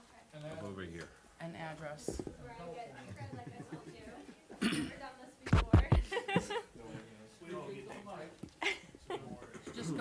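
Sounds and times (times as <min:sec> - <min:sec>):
person coughing: 0:04.6 - 0:05.0.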